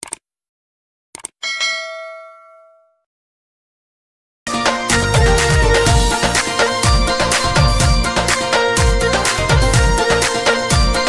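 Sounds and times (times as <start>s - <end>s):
clusters of clicks: 0.0s - 0.2s
bright bell ding: 1.4s - 3.0s.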